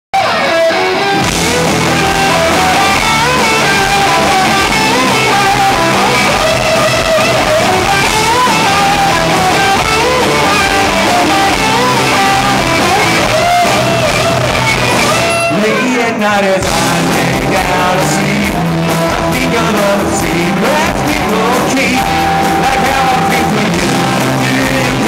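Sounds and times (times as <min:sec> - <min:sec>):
electric guitar lead line: 0:00.1 - 0:25.0
rock band playing live: 0:00.1 - 0:25.0.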